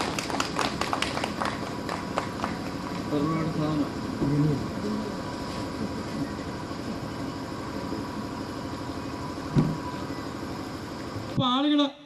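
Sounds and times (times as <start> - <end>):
thump: 9.5 - 9.9.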